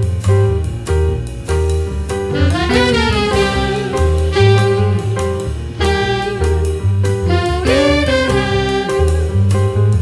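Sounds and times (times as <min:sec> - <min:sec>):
double bass: 0:00.0 - 0:10.0
drums: 0:00.0 - 0:10.0
trombone: 0:02.2 - 0:10.0
saxophone: 0:02.3 - 0:09.8
people singing: 0:07.4 - 0:09.0.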